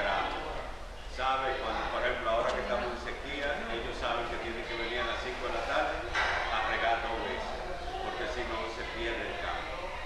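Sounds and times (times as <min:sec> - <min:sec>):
man speaking: 0:01.1 - 0:09.6.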